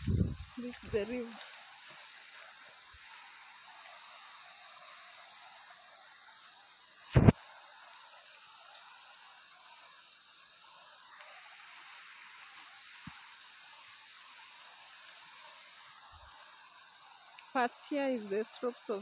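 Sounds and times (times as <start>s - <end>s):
stream hiss: 0.0s - 19.0s
faint clicks: 7.2s - 8.9s.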